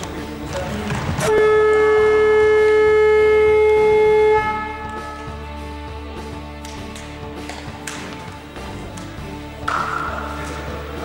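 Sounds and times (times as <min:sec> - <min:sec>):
long steady horn tone: 0:01.2 - 0:06.3.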